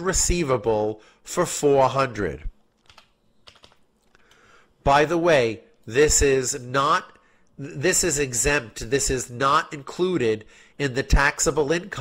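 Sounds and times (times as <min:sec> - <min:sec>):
faint keyboard keystrokes: 0:02.7 - 0:04.4.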